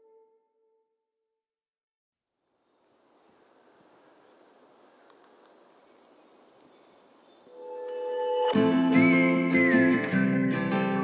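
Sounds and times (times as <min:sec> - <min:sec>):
small birds chirping: 0:02.3 - 0:08.5
soft steady hiss: 0:02.5 - 0:07.5
song intro notes: 0:07.6 - 0:11.0.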